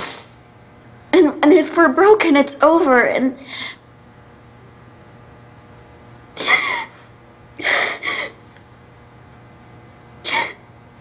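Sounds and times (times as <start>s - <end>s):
woman sobbing: 6.4s - 7.0s, 7.6s - 8.4s.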